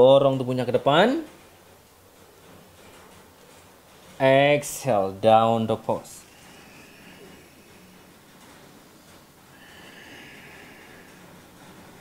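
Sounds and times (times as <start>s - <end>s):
person breathing out: 6.2s - 8.1s, 9.5s - 12.0s.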